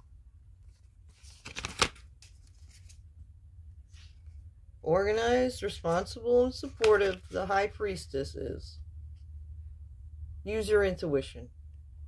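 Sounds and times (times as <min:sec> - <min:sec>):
cards being shuffled: 0:00.6 - 0:03.0, 0:06.6 - 0:07.5
sharp card snap: 0:01.4 - 0:02.0.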